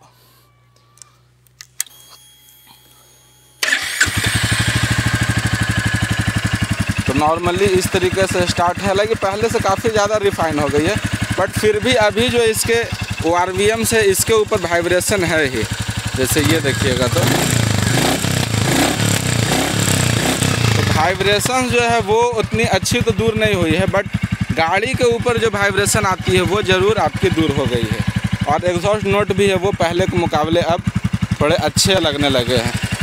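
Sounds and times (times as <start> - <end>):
motorcycle engine idling: 3.6 - 33.0
motorcycle engine starting: 3.6 - 33.0.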